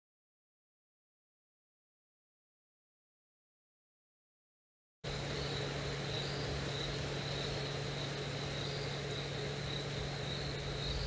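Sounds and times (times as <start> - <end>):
steady low hum: 5.0 - 11.0
night insects trilling: 5.1 - 11.0.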